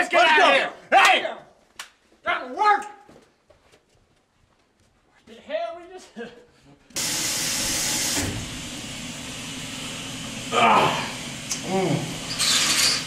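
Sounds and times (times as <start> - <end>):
shower water spray hissing: 7.0 - 13.0.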